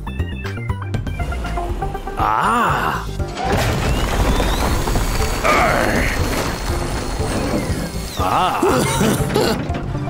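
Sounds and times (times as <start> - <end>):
background music: 0.0 - 10.0
rocks crashing: 3.1 - 8.2.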